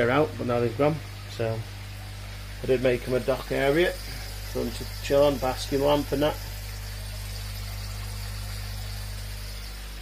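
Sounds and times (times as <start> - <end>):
aquarium pumps humming: 0.0 - 10.0.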